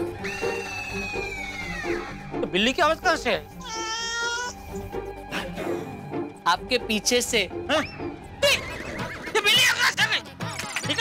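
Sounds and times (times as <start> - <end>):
cat meowing: 3.6 - 4.6.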